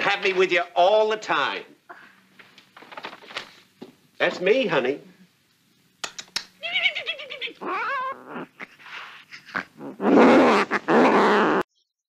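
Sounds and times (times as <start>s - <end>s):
cat yowling harshly: 6.6s - 8.7s
cat meowing: 7.5s - 8.5s.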